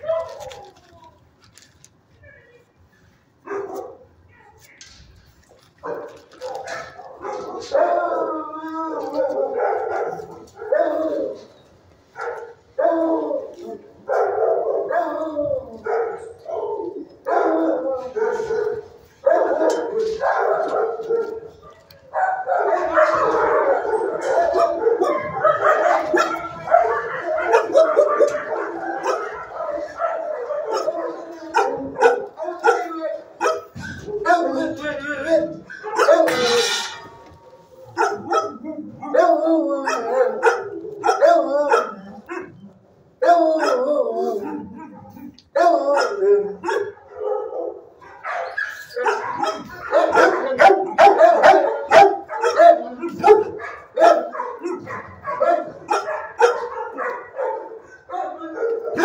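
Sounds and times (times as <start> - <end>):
dogs barking and howling: 5.7 - 59.0.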